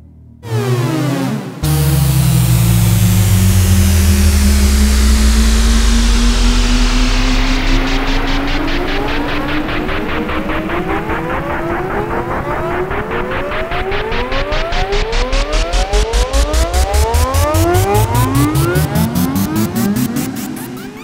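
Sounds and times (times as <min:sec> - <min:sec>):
low synth drone: 0:00.0 - 0:21.0
synthesizer rising pitch: 0:00.4 - 0:21.0
synth sweeps and pulsing flutter: 0:01.6 - 0:21.0.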